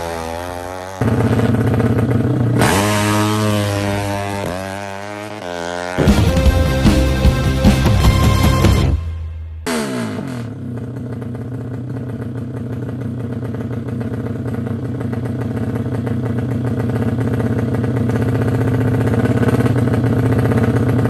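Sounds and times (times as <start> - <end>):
motorcycle engine idling fast: 0.0 - 8.9, 9.9 - 21.0.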